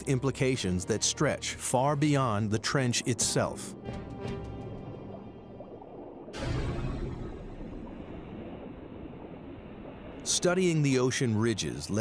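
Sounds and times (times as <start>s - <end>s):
low underwater rumbling: 3.8s - 10.8s.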